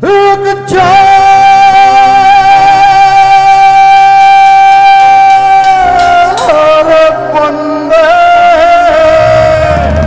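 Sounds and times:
man singing long high note: 0.0s - 10.0s
live band playing: 4.5s - 8.9s.

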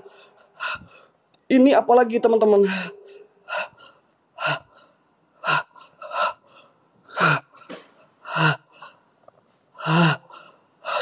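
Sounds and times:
man gasping breaths: 0.0s - 1.2s, 2.7s - 9.1s, 9.7s - 11.0s.

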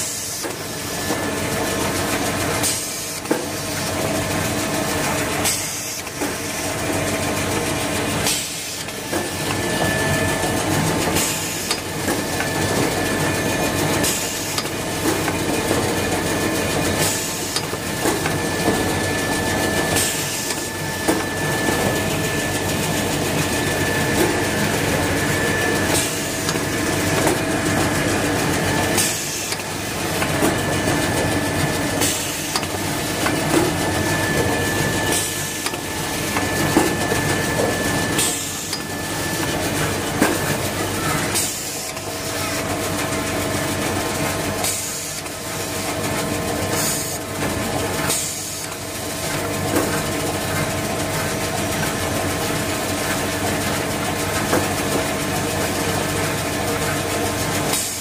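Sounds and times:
machine hum and hiss: 0.0s - 58.0s.

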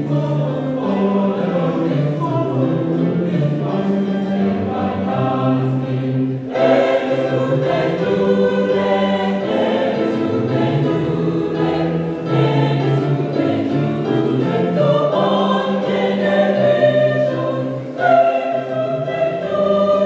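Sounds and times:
church choir singing: 0.0s - 20.0s.

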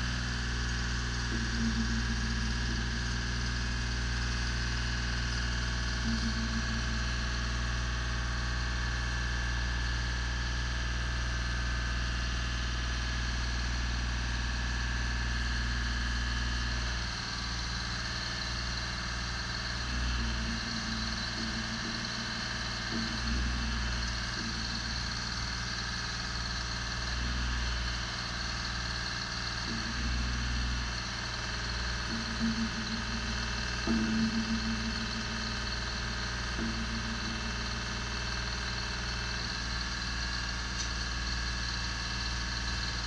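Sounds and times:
on-off hum of boom moving: 0.0s - 9.1s, 16.5s - 43.0s
diesel engine running: 0.0s - 43.0s.

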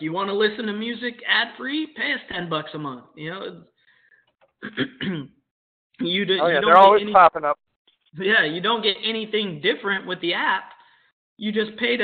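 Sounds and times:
person clearing throat: 4.6s - 5.4s.

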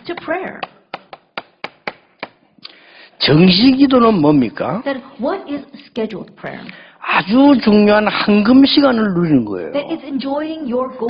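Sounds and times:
chalk tapping on chalkboard: 0.1s - 2.4s.

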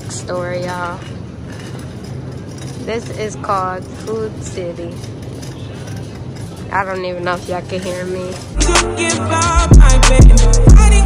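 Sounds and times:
woman's voice: 0.0s - 1.1s, 2.8s - 5.1s, 6.7s - 8.5s
supermarket background rumble: 0.0s - 8.6s.

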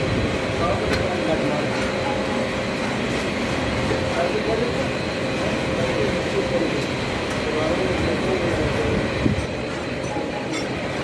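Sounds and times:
continuous rumble and hiss: 0.0s - 11.0s
faint voices: 3.7s - 11.0s.

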